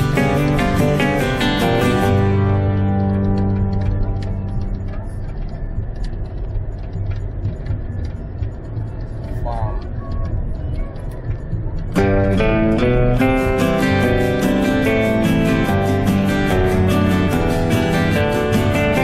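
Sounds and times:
car cabin road noise: 0.0s - 19.0s.

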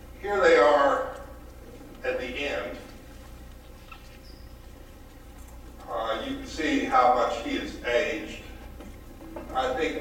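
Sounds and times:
steady low hum: 0.0s - 10.0s
man speaking: 2.0s - 2.9s, 5.9s - 8.6s, 9.5s - 10.0s.

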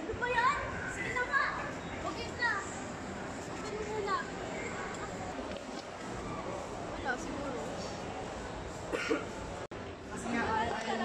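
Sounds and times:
background murmur: 0.0s - 11.0s.

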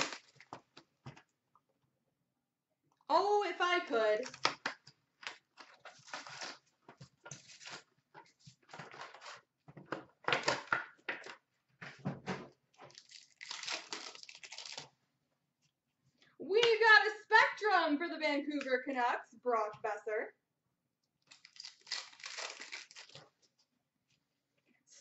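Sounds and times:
wrappers torn and crinkled: 0.0s - 0.5s, 5.2s - 7.9s, 12.8s - 15.0s, 21.2s - 23.4s.

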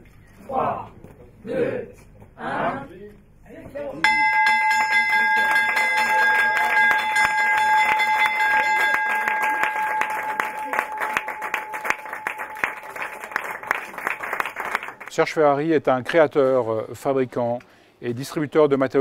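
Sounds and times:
brass bell ringing: 4.0s - 14.1s
small group applauding: 4.1s - 15.2s.

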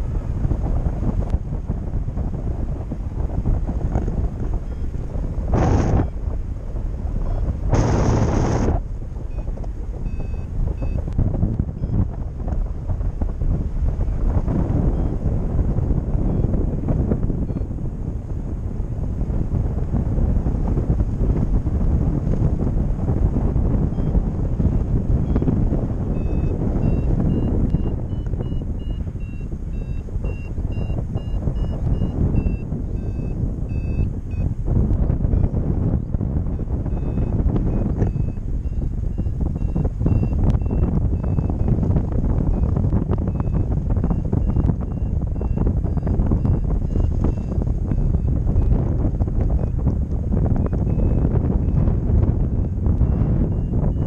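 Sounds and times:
wind buffeting microphone: 0.0s - 54.0s
variometer high beeps: 9.3s - 11.1s, 26.1s - 34.5s, 36.6s - 41.8s, 42.5s - 48.7s, 53.1s - 54.0s.

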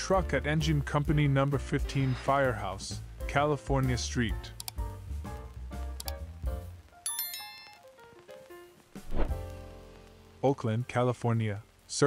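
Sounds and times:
bell-like music notes: 7.1s - 8.0s.

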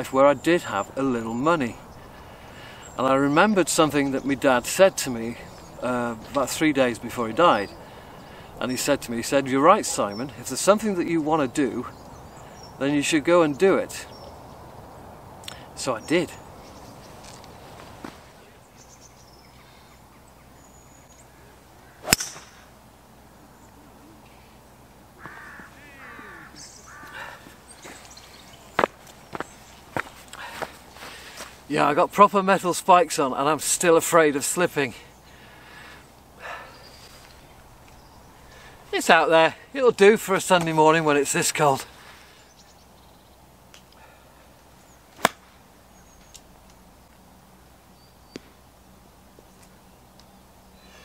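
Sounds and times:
golf club striking ball: 22.0s - 22.7s, 45.2s - 45.5s.

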